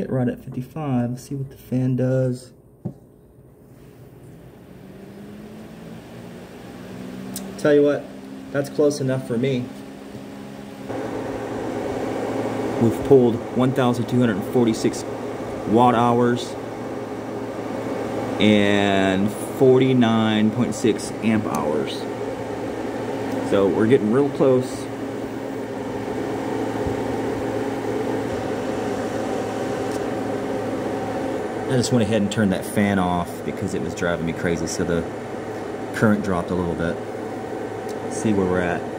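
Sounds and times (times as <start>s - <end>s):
electric fan whirring: 0.0s - 38.9s
inverter electrical hum: 0.0s - 38.9s.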